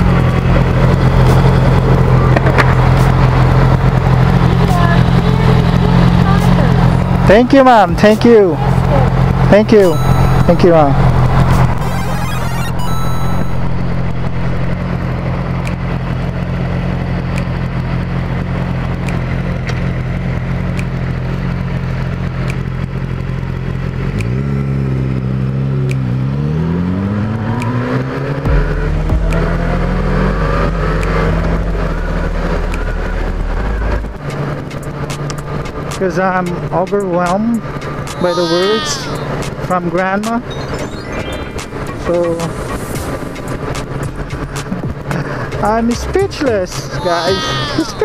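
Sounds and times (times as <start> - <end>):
motorcycle accelerating through gears: 14.0 - 36.5.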